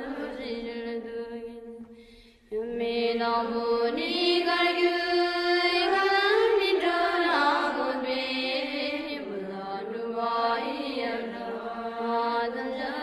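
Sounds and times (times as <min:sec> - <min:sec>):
person chanting a prayer: 0:02.5 - 0:13.0.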